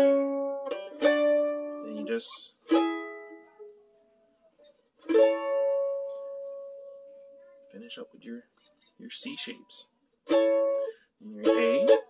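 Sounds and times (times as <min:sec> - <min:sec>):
mandolin chords ringing: 0:00.0 - 0:04.4, 0:05.0 - 0:08.0, 0:09.3 - 0:12.0.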